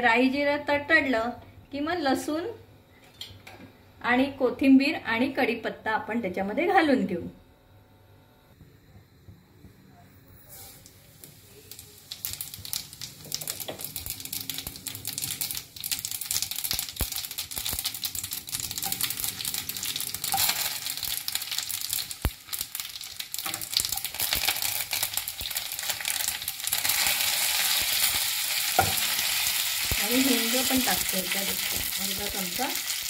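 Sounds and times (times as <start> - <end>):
spices sizzling in hot oil: 10.5 - 33.0.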